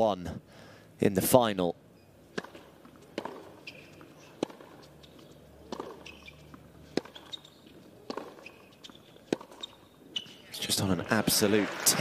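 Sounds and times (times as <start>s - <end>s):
shoe squeaks on court: 2.0s - 10.7s
tennis ball struck by rackets: 2.3s - 10.3s.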